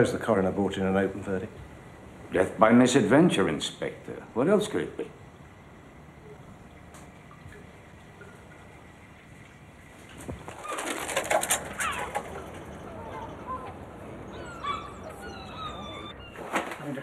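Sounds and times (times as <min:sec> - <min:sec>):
birds chirping: 0:11.6 - 0:17.0.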